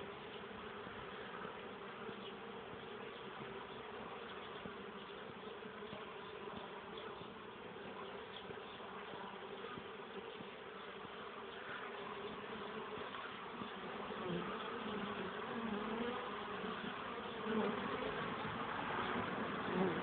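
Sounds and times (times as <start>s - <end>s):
honeybees buzzing: 0.0s - 20.0s.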